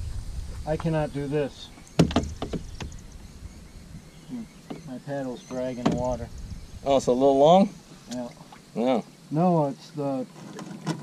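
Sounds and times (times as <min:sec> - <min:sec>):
paddle knocking against kayak: 0:02.0 - 0:03.0, 0:04.6 - 0:06.2.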